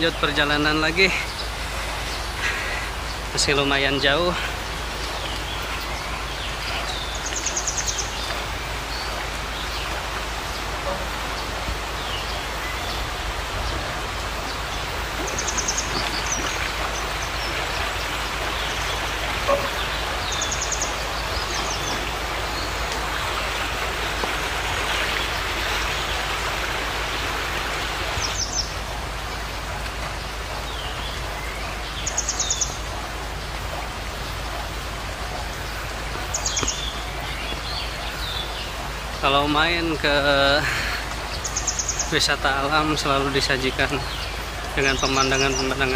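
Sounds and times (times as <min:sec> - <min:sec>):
river water rushing: 0:00.0 - 0:45.9.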